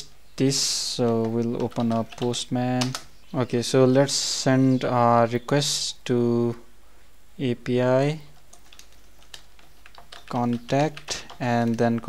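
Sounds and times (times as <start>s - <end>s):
computer keyboard keystrokes: 1.0s - 3.1s, 8.4s - 11.8s.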